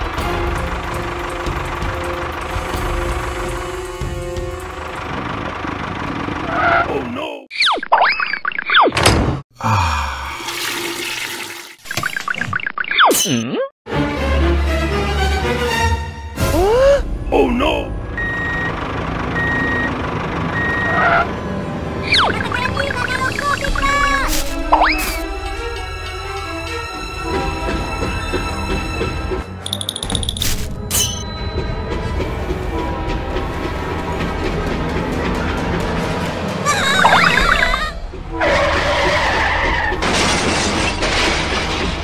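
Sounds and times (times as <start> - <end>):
engine running: 0.0 - 6.9, 17.8 - 38.4
brake screech: 5.7 - 7.0, 19.4 - 21.4
vehicle reversing alarm beeping: 18.1 - 21.2.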